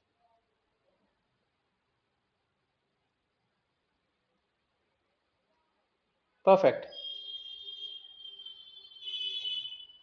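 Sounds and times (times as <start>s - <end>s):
high-pitched whistle-like tone: 6.8s - 10.0s.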